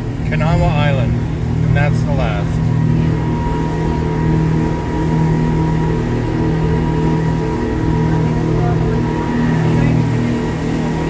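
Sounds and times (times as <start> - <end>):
boat engines droning: 0.0 - 11.0.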